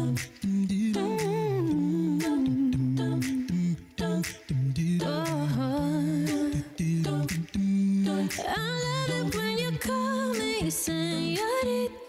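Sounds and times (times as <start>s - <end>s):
sung bass line: 0.0s - 10.0s
beatboxed percussion: 0.0s - 12.0s
vocal group humming harmonies: 0.0s - 12.0s.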